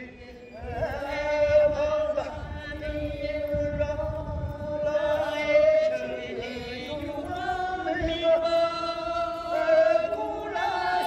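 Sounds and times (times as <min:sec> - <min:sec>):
group singing in unison: 0:00.0 - 0:11.0.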